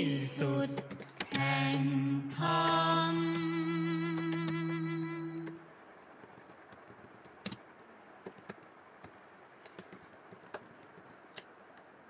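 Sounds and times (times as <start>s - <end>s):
computer keyboard typing clicks: 4.1s - 5.6s, 6.2s - 11.9s.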